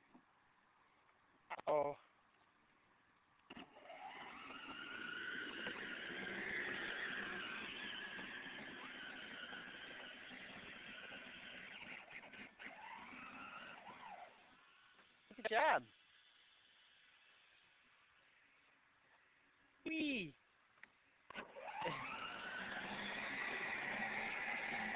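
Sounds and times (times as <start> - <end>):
vehicle motor whining: 3.5 - 15.1, 21.3 - 24.9.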